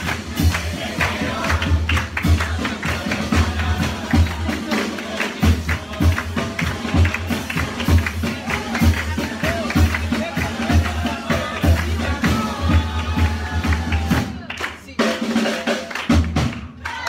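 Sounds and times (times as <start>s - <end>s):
bass drum beating: 0.0s - 14.5s.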